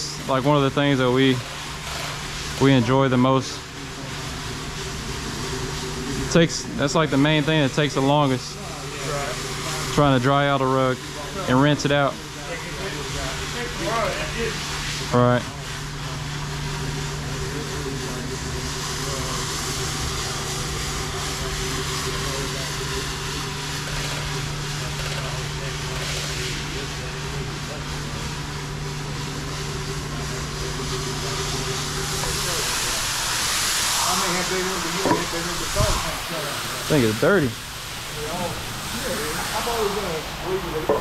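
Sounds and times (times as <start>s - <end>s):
floor machine motor humming: 0.0s - 41.0s
hose spraying water: 0.0s - 41.0s
scrubbing pad hissing on wet suds: 0.2s - 40.9s.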